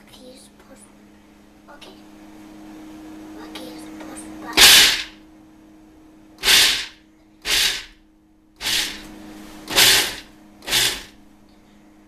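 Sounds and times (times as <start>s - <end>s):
food processor chopping peanuts: 4.6s - 5.1s, 6.4s - 7.9s, 8.6s - 9.1s, 9.7s - 11.1s.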